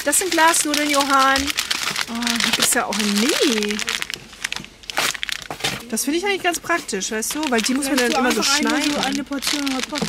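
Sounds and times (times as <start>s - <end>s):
plastic packet crinkling: 0.0s - 10.0s.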